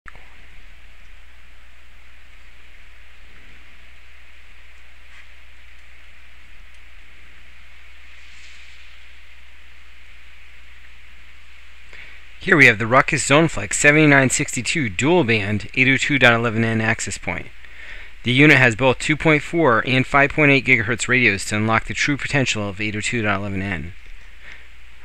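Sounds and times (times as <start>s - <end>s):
low hum: 0.1s - 25.0s
steady hiss: 0.1s - 25.0s.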